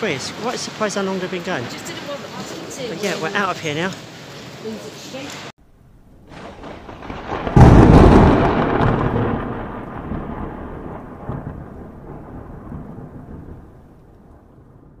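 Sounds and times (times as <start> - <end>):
thunder-like boom: 6.0 - 15.0.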